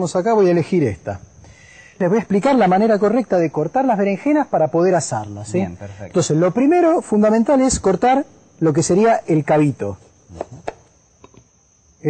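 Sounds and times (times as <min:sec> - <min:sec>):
insects trilling: 0:00.0 - 0:12.0.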